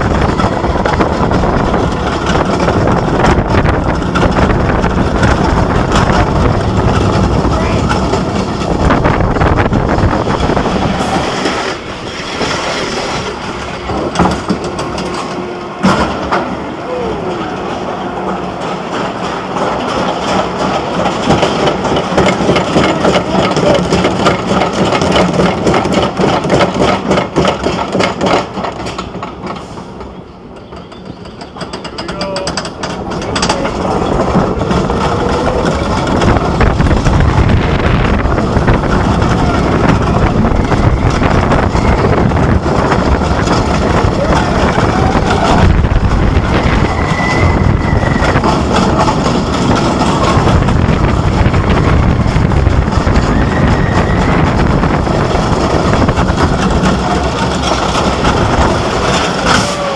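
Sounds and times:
roller coaster wheels on track: 0.0 - 59.9.

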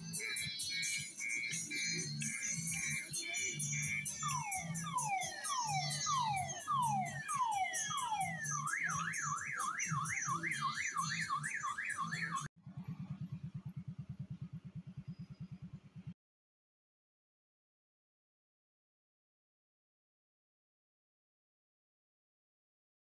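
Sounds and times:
electronic siren sound effects: 0.0 - 12.5
steady music beat: 0.0 - 12.5
low fast buzzing pulse: 12.6 - 16.2.

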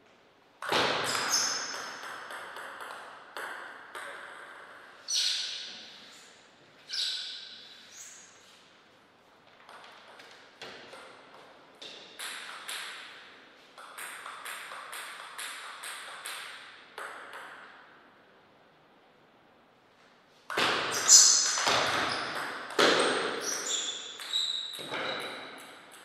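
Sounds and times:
table tennis ball bouncing: 0.6 - 5.6, 9.6 - 18.0, 20.5 - 26.0
ball striking paddles and table: 0.6 - 6.0, 9.5 - 18.0, 20.5 - 26.0.

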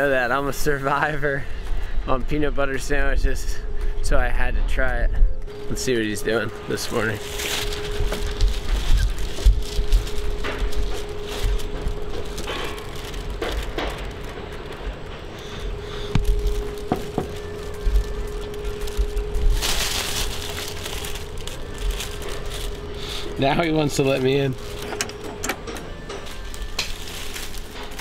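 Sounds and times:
steady hum: 0.0 - 28.0.

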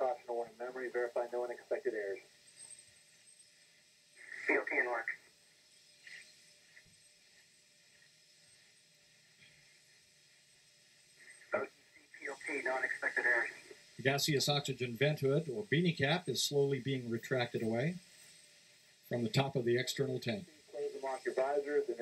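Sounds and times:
telephone-like voices: 0.0 - 2.2, 4.2 - 5.3, 11.4 - 18.0, 19.1 - 22.0
faint steady tone: 0.0 - 22.0.

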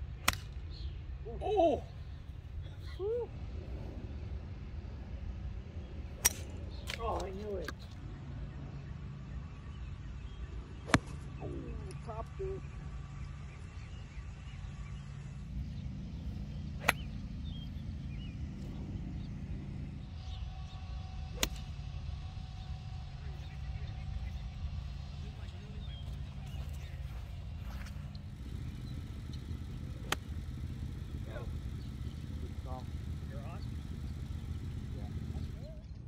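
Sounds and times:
golf clubs striking balls: 0.2 - 0.7, 6.2 - 8.0, 16.4 - 19.9, 21.2 - 21.9, 25.5 - 35.8
low rumble: 2.0 - 9.6, 10.4 - 36.0.

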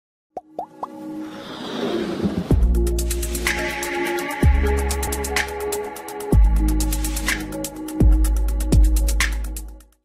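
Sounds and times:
intro music: 2.2 - 9.8.

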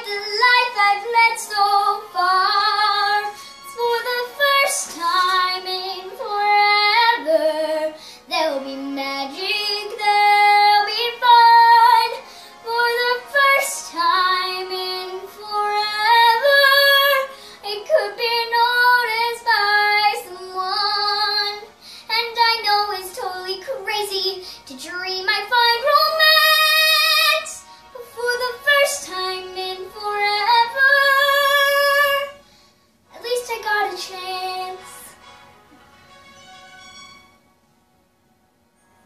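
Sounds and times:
girl singing a show tune: 0.0 - 32.4, 33.1 - 35.2
singer breathing: 3.3 - 3.7, 8.0 - 8.3, 12.2 - 12.6, 17.3 - 17.6, 21.7 - 22.1, 24.4 - 24.7, 32.4 - 33.0.

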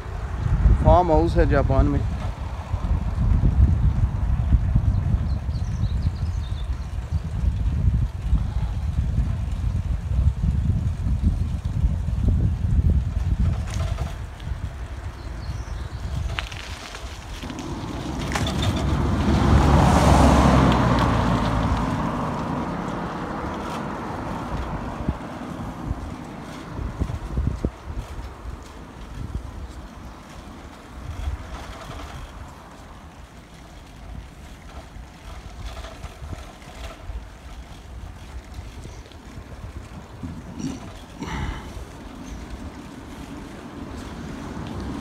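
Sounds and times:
wind rumble on microphone: 0.0 - 45.0
motor vehicle passing: 13.5 - 45.0.

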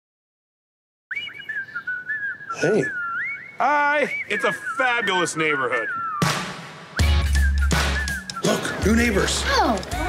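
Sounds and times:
person whistling a tune: 1.1 - 9.8.

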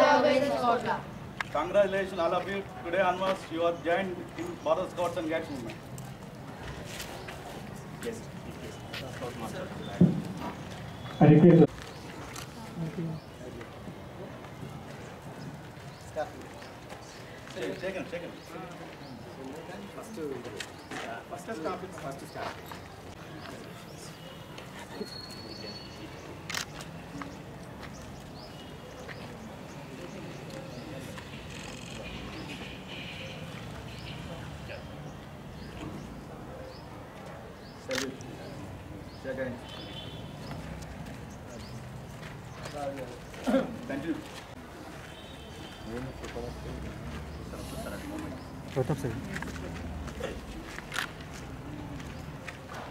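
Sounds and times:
outdoor background noise: 0.0 - 52.9
faint murmur of voices: 6.2 - 52.9
sharp knock: 10.0 - 10.4.

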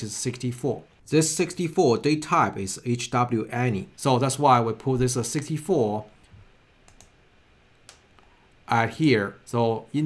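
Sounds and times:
computer mouse clicks: 6.8 - 7.2, 7.8 - 8.3.

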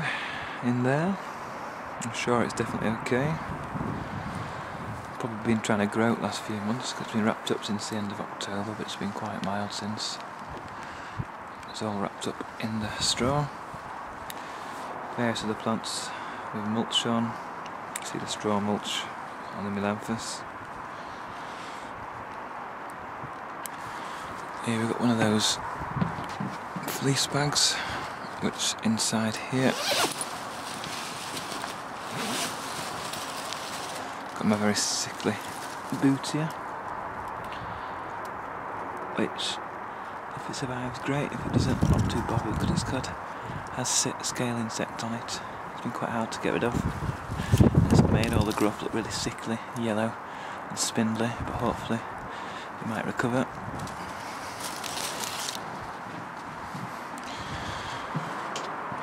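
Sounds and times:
steady outdoor hiss: 0.0 - 59.0
soft footsteps: 23.2 - 27.4, 29.8 - 34.5, 53.8 - 59.0
bag being unzipped: 29.7 - 34.1
fabric rustling: 29.7 - 36.1, 53.8 - 56.6.

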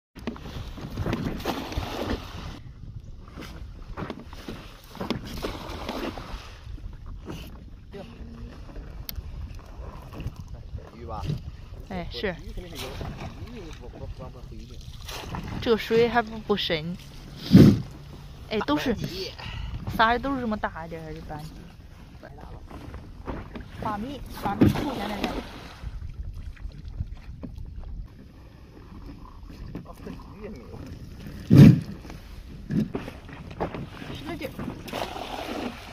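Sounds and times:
net hauled out of water: 0.2 - 2.6, 3.2 - 19.8, 21.5 - 35.9
low wind rumble on microphone: 0.2 - 35.9
water splashing and streaming: 0.2 - 35.9.

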